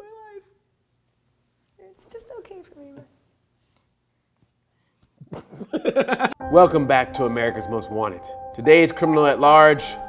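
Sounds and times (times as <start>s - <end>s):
laughter: 5.2s - 6.4s.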